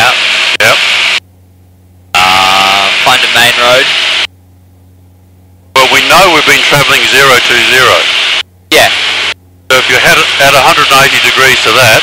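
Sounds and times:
cabin and engine noise hiss: 0.0s - 12.0s
faint engine hum: 0.0s - 12.0s.

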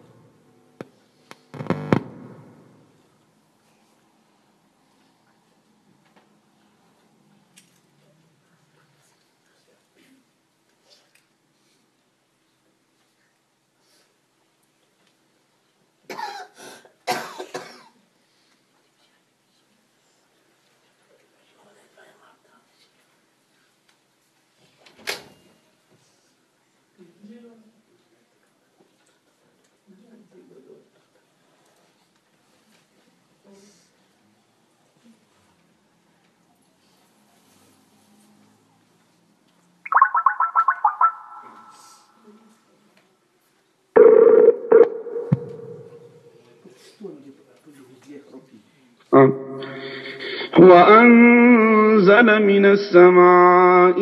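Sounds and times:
person coughing: 16.1s - 18.0s, 49.6s - 50.6s
electronic ringing tone: 39.9s - 41.9s, 44.0s - 46.2s.

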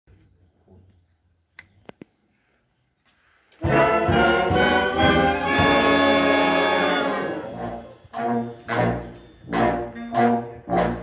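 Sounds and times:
faint hall room tone: 0.1s - 11.0s.

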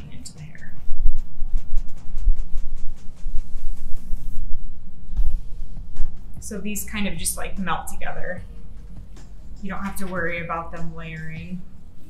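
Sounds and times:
hands rubbing wet hair: 1.3s - 5.8s.

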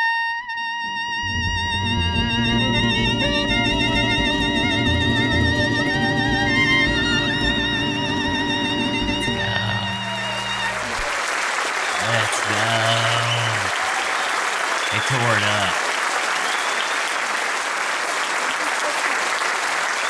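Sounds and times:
band holding final note: 1.1s - 11.1s
audience applauding: 9.0s - 20.0s
people shouting calls: 9.3s - 11.1s, 11.9s - 14.2s, 14.9s - 15.8s.

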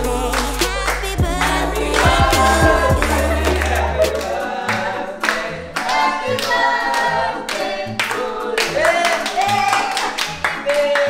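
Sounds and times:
group singing a birthday song: 0.0s - 9.6s
hand clapping: 0.3s - 11.0s.

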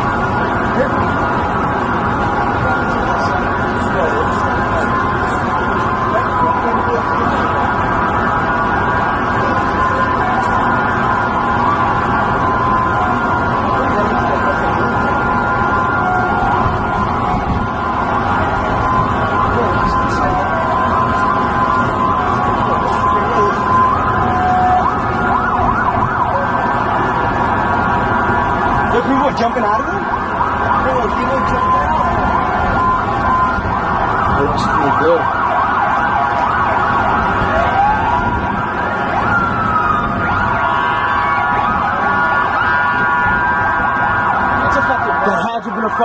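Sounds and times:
city street noise: 0.0s - 46.0s
distant sirens wailing: 0.0s - 46.0s.

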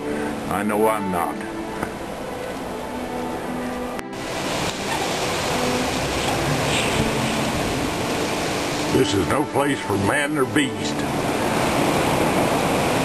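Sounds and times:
faint background music: 0.0s - 12.3s
blizzard wind blowing hard: 2.0s - 9.4s, 10.9s - 13.0s.

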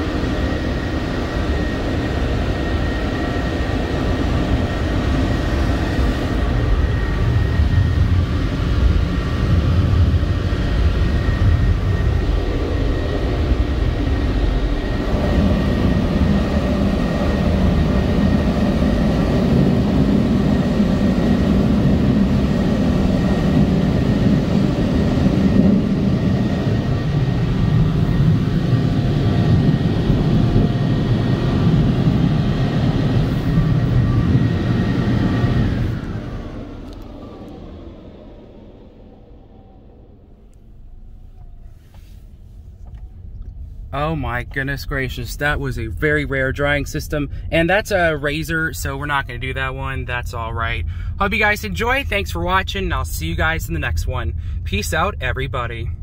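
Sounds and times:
car wash blowers rushing air: 0.0s - 56.0s
high fan whine: 0.0s - 56.0s.

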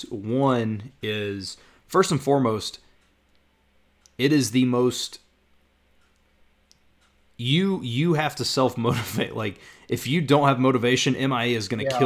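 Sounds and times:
man speaking: 0.0s - 2.8s, 4.2s - 5.3s, 7.4s - 12.0s.

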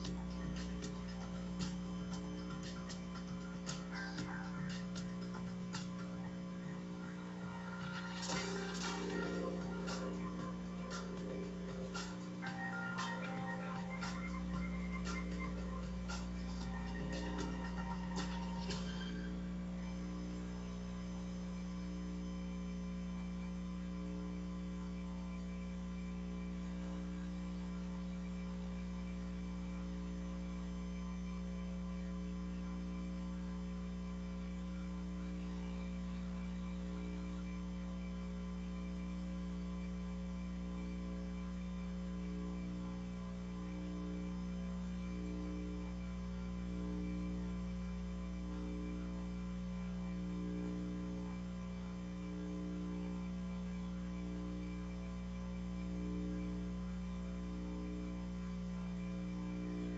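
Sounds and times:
electrical mains hum: 0.0s - 59.9s.

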